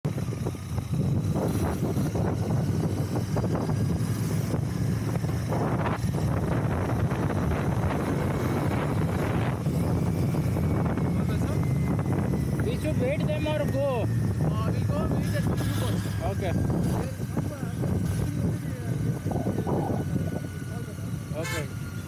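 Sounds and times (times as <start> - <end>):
motorcycle engine running: 0.0 - 22.0
wind rushing over microphone: 0.1 - 22.0.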